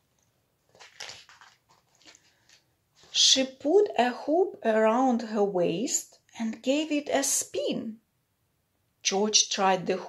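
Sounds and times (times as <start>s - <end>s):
book pages rustling: 0.2s - 3.2s.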